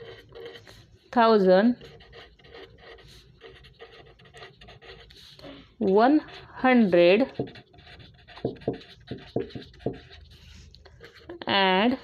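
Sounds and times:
pen scratching on paper: 0:00.0 - 0:00.9, 0:01.7 - 0:11.4.

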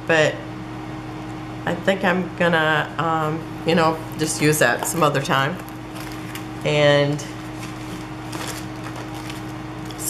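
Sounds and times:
steady low hum: 0:00.0 - 0:10.0
sticker sheets rustling: 0:07.5 - 0:10.0.

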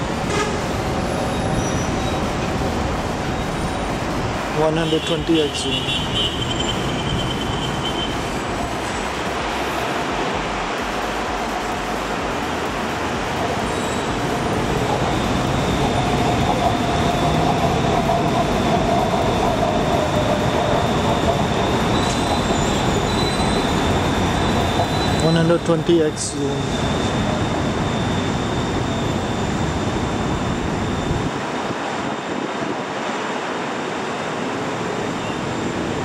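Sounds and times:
thin whine: 0:00.0 - 0:33.2
traffic noise: 0:00.0 - 0:36.0.

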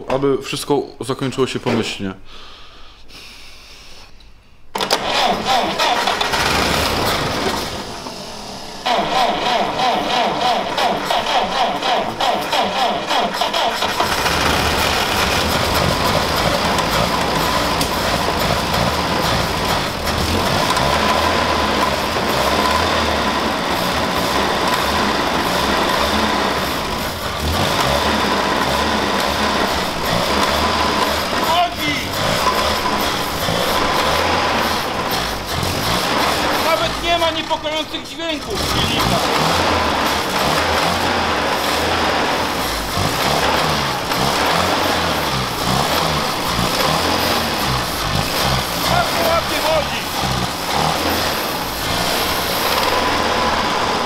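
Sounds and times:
car engine cranking and starting: 0:04.7 - 0:54.0.

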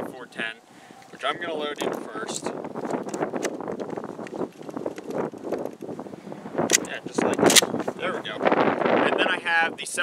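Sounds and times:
wind buffeting microphone: 0:01.1 - 0:10.0
shotshells pushed into magazine: 0:06.7 - 0:07.8.

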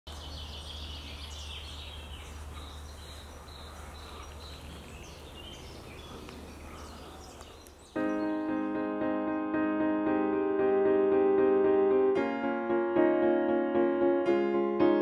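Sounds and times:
birds chirping: 0:00.1 - 0:09.6.

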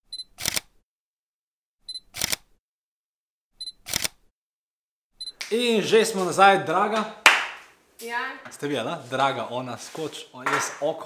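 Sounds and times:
autofocus beep: 0:00.1 - 0:00.4, 0:01.9 - 0:02.1, 0:03.6 - 0:03.8
camera shutter click: 0:00.4 - 0:00.7, 0:02.2 - 0:02.4, 0:03.9 - 0:04.2.

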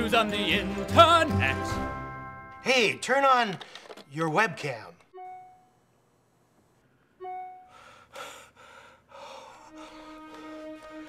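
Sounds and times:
held keyboard note: 0:05.1 - 0:05.8, 0:07.2 - 0:08.0.

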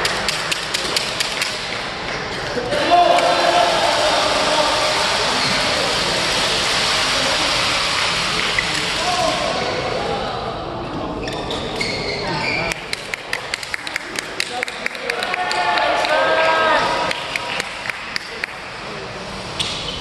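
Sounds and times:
voices echoing in hall: 0:00.0 - 0:20.0.

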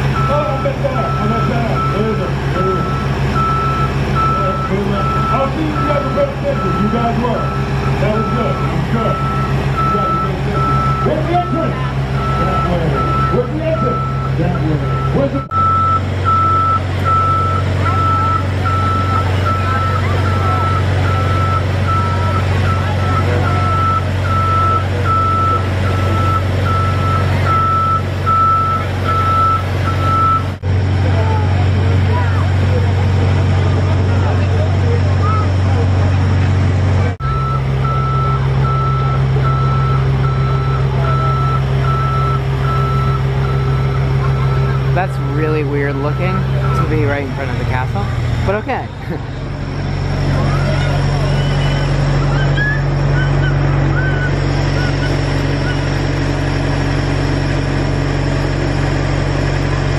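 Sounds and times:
loud low engine drone: 0:00.0 - 0:59.9
motion alarm beeping: 0:00.2 - 0:30.6, 0:37.2 - 0:47.6.

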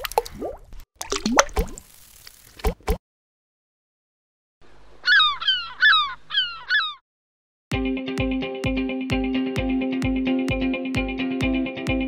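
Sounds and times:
bird calling: 0:05.0 - 0:07.0
guitar music with beat: 0:07.8 - 0:12.0.

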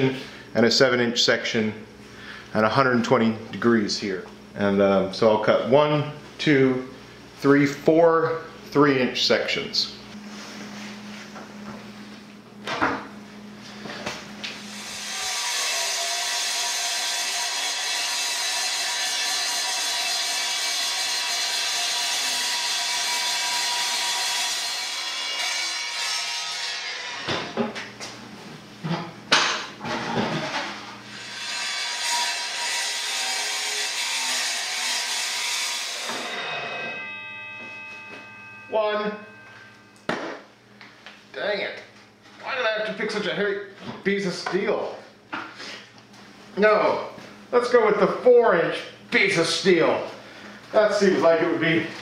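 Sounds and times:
saw cutting steel whine: 0:14.6 - 0:27.3, 0:31.1 - 0:40.1.

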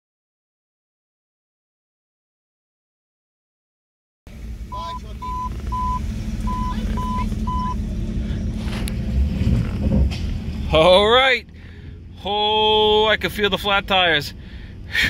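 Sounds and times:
car engine running: 0:04.3 - 0:15.0
dashboard warning chime beeping: 0:04.7 - 0:07.8
man talking: 0:10.7 - 0:11.4, 0:12.2 - 0:14.4.

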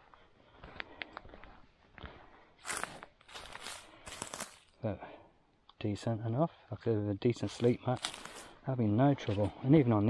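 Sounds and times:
footsteps crunching on gravel: 0:00.6 - 0:04.7, 0:07.4 - 0:08.6.

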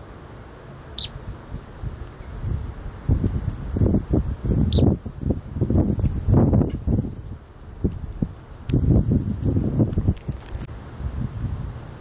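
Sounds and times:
sharp bird calls: 0:01.0 - 0:01.4
wind gusts on microphone: 0:01.0 - 0:12.0.

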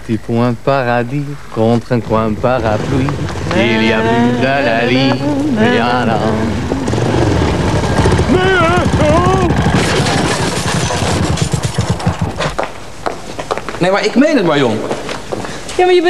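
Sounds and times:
vehicle engine puttering: 0:01.8 - 0:12.7
woman singing: 0:03.5 - 0:06.9.

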